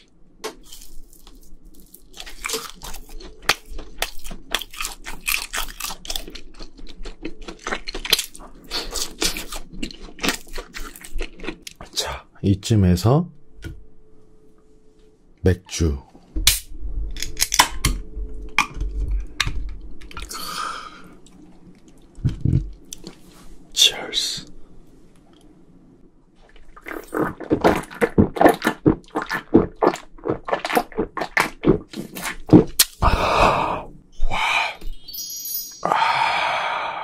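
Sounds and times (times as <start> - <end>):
breathy exhales: 20.3 - 21.2, 33.0 - 34.8, 35.8 - 37.0.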